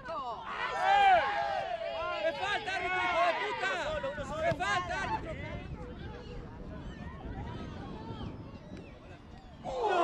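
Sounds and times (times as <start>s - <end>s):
voices shouting and calling: 0.3s - 10.0s.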